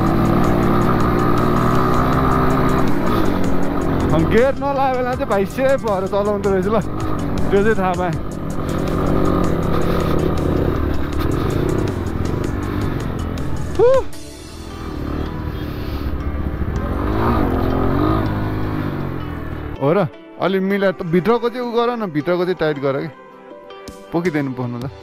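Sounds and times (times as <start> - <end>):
dirt bike engine revving: 0.0 - 19.8.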